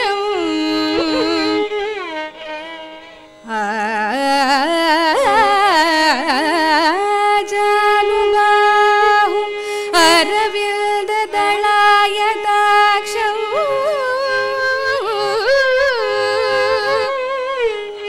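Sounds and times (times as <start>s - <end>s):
woman singing: 0.0s - 2.1s, 3.4s - 18.0s
violin accompaniment: 0.0s - 18.0s.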